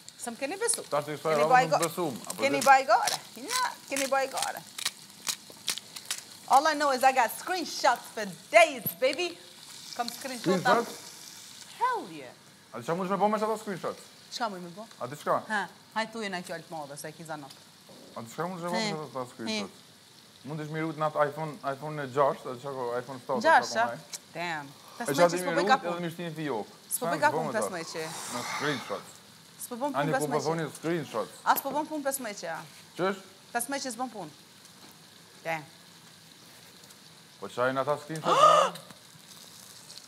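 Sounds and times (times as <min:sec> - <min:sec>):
food sizzling in a frying pan: 0:00.0 - 0:40.0
voices talking: 0:23.2 - 0:29.1, 0:38.2 - 0:38.9.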